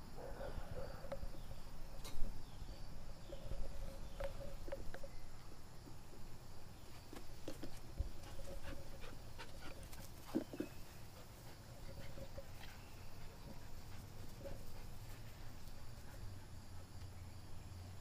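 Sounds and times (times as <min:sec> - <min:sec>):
puppy panting: 0:08.1 - 0:17.0.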